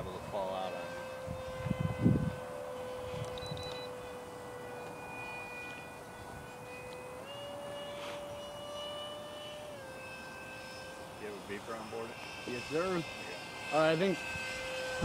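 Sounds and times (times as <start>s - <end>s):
electric fan motor whining: 0.0s - 15.0s.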